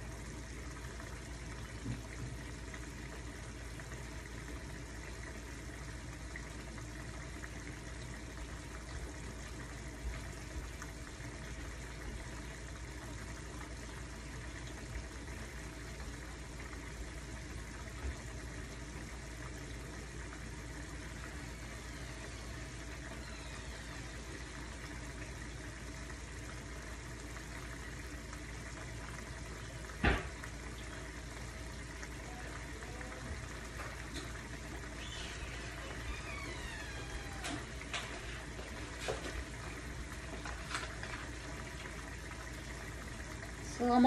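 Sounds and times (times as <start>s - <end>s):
sauce simmering in a frying pan: 0.0s - 44.0s.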